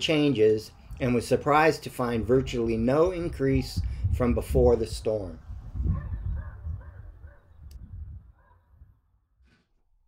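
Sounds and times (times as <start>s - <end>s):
wind rumble on microphone: 2.1s - 9.1s.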